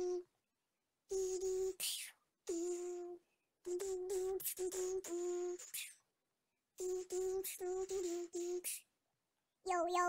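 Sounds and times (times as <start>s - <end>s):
person humming rhythmic beat: 0.0s - 0.3s, 1.1s - 6.0s, 6.8s - 8.8s.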